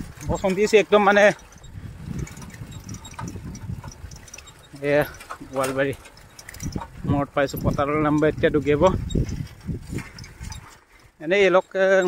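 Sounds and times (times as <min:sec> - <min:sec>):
bicycle jolting over brick paving: 0:00.0 - 0:11.4.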